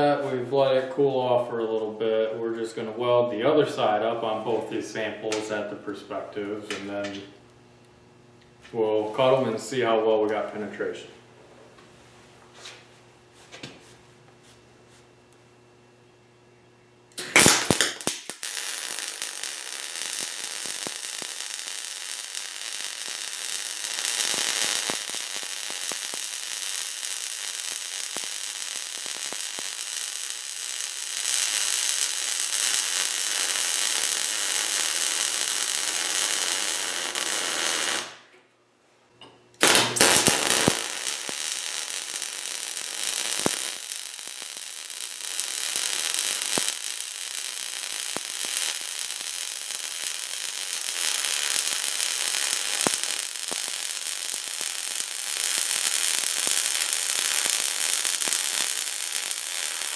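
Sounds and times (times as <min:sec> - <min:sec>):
welding arc crackling hiss: 0:03.7 - 0:07.5, 0:17.1 - 0:38.4, 0:39.6 - 0:59.9.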